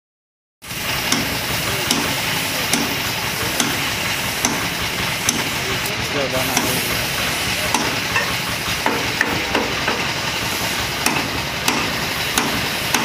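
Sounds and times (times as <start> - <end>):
spray gun hissing: 0.7 - 13.0.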